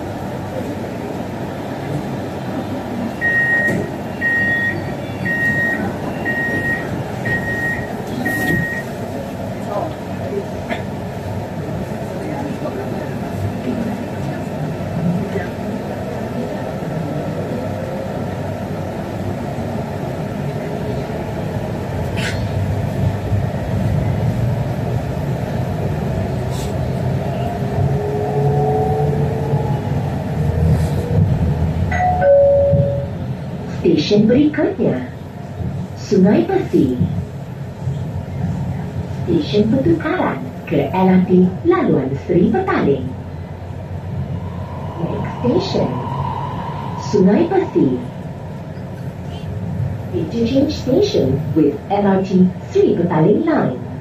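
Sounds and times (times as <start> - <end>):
train rumble: 0.0 - 54.0.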